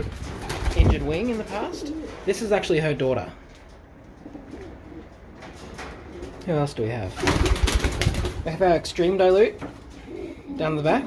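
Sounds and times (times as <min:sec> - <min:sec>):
pigeons cooing softly: 0:03.8 - 0:06.4, 0:09.8 - 0:11.0.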